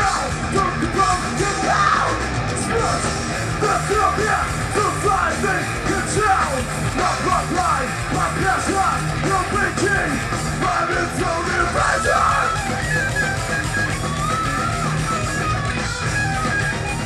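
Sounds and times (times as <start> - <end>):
bass guitar: 0.0 - 17.0
distorted electric guitar: 0.0 - 17.0
drums: 0.0 - 17.0.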